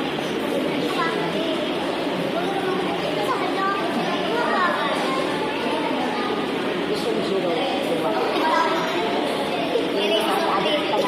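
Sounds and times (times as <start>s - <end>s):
group chatter: 0.0s - 11.0s.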